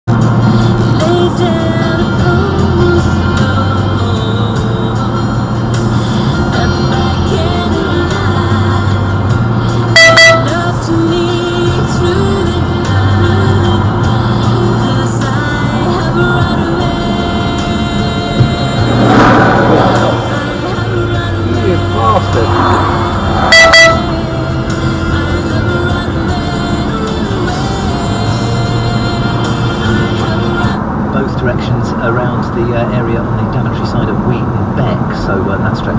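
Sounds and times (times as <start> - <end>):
music on car radio: 0.1 - 35.9
loud tone: 9.9 - 10.8, 18.6 - 25.8.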